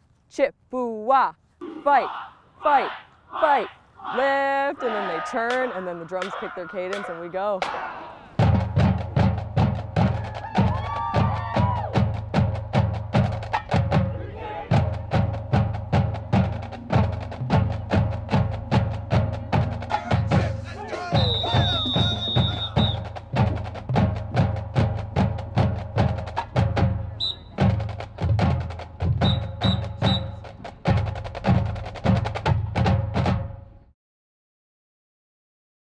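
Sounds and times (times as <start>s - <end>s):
drumline playing cadence: 1.6s - 33.9s
sustained band notes: 15.1s - 31.6s
high whistle-like tone: 21.1s - 23.1s, 27.2s - 27.6s, 29.2s - 30.4s.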